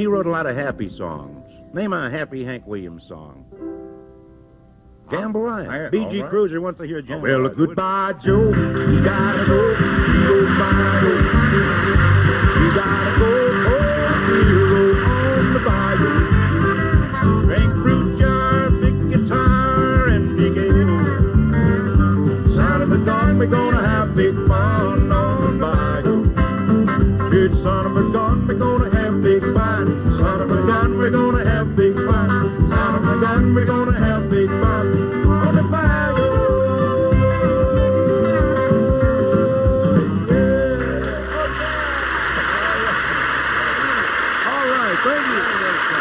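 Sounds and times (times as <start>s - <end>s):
live country band music: 0.0s - 6.6s, 7.3s - 44.0s
guitar sliding between notes: 8.3s - 33.8s, 34.4s - 44.2s.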